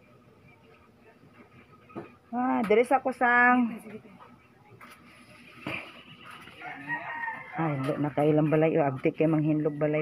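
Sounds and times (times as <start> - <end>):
distant rooster crowing: 6.5 - 8.5.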